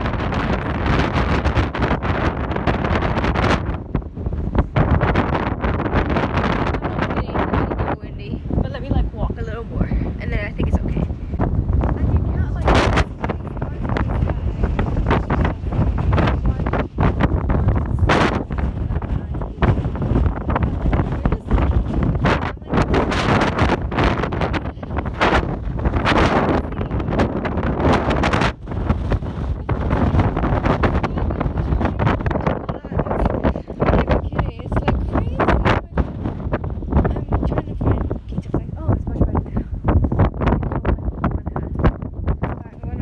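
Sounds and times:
strong wind buffeting microphone: 0.0 - 43.0.

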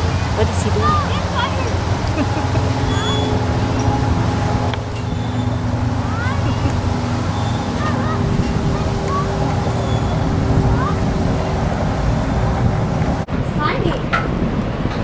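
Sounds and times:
droning engine hum: 0.0 - 15.0
traffic rumble: 0.0 - 15.0
short high chirps: 2.6 - 3.4.

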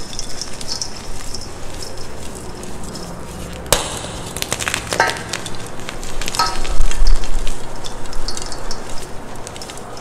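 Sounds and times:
hand crumbling chalk powder: 0.0 - 10.0.

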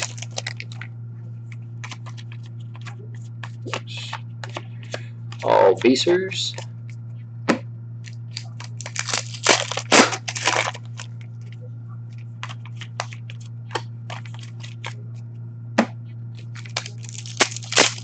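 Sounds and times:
foil wrappers tearing and crinkling: 0.0 - 0.8, 1.8 - 2.9, 8.3 - 11.1, 12.4 - 13.2, 14.1 - 15.0, 16.4 - 18.0
low hum: 0.0 - 18.0.

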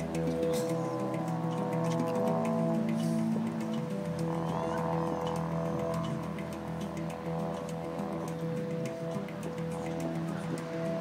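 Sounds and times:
didgeridoo drone: 0.0 - 11.0.

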